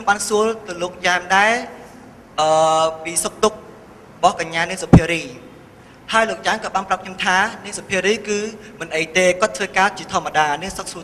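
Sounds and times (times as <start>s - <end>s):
man speaking into a microphone: 0.0s - 11.0s.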